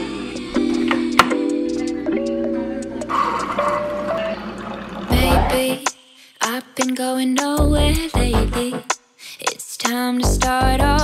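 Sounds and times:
background music: 0.0 - 6.2, 7.4 - 9.0, 10.2 - 11.0
coffee maker brewing: 3.0 - 5.5.

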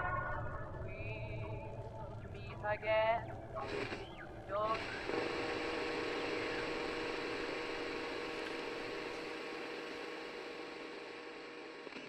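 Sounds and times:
faint steady hum: 0.0 - 12.0
static-like hiss: 0.0 - 12.0.

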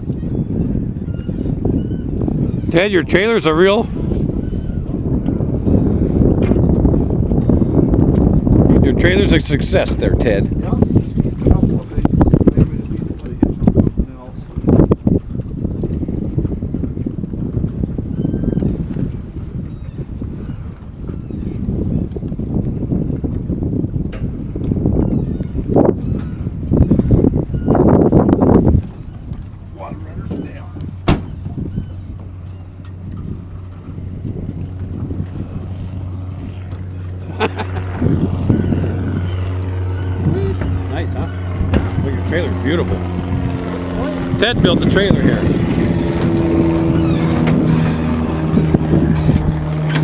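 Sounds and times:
low engine hum: 0.0 - 50.0
wind rumbling on microphone: 0.0 - 50.0.

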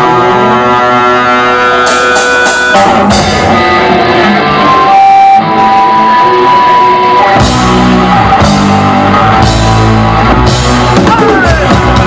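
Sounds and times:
electric guitar ringing notes: 0.0 - 12.0
punk rock band playing live: 0.0 - 12.0
sharp cymbal hits: 1.9 - 3.4.

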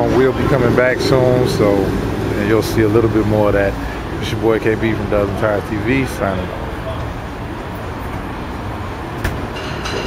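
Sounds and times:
low outdoor rumble: 0.0 - 9.6.

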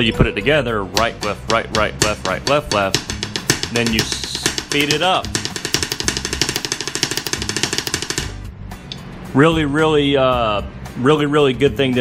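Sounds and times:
drumsticks playing fast rudiment: 0.9 - 8.4.

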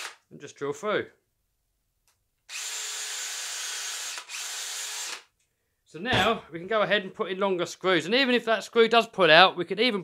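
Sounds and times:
cordless drill drilling: 2.5 - 5.3.

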